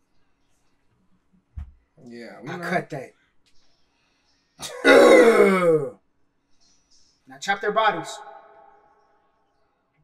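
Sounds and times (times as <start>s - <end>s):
man speaking: 7.3s - 8.4s.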